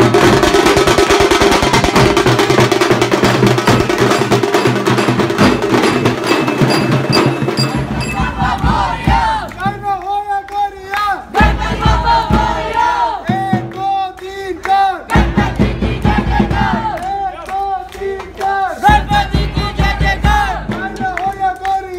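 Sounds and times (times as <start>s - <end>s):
procession drums beating: 0.0s - 10.5s, 11.3s - 21.6s
men chanting and shouting: 7.6s - 21.9s.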